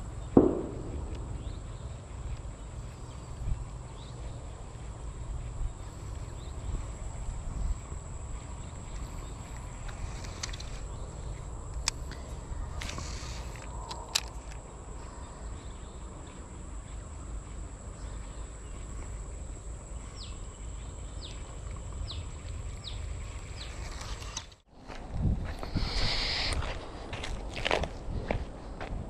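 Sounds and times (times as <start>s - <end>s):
insect drone: 0.0s - 29.0s
falling bird chirps: 0.1s - 4.2s
low rumble: 0.2s - 9.9s
sharp clicks: 11.7s - 14.6s.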